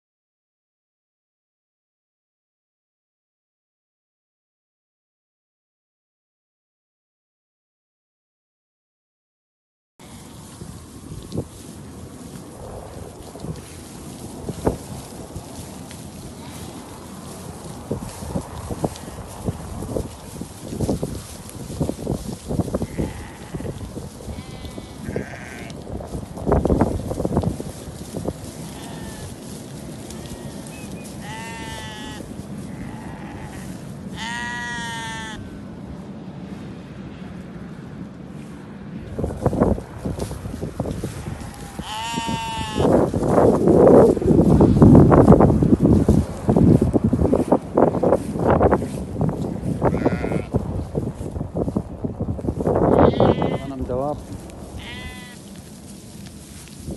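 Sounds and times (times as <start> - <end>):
sheep bleating: 10.0 - 10.4, 16.3 - 19.5, 22.7 - 25.8, 28.6 - 29.4, 30.0 - 35.6, 41.1 - 43.0, 49.7 - 50.6, 52.8 - 53.9, 54.8 - 55.4.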